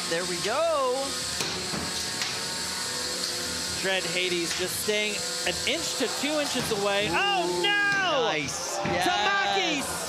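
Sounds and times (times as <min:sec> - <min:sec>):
robot weapons whirring: 0:00.0 - 0:08.8.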